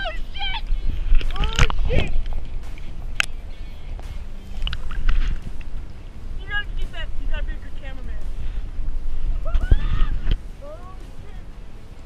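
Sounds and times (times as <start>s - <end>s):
wind buffeting microphone: 0.0s - 12.0s
short pitched calls: 3.3s - 4.6s.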